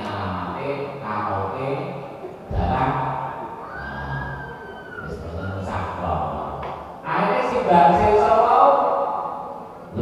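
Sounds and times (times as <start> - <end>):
man reciting over loudspeakers: 0.0 - 3.4, 5.0 - 10.0.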